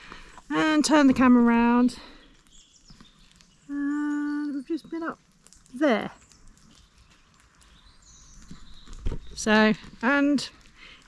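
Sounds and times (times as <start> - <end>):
faint outdoor ambience: 0.0 - 11.0
person speaking: 0.5 - 2.0.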